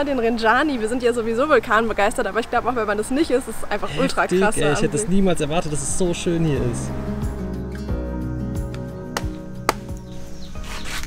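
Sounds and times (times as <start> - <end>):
background music: 0.0 - 11.0
pod cracking knocks: 8.7 - 10.1.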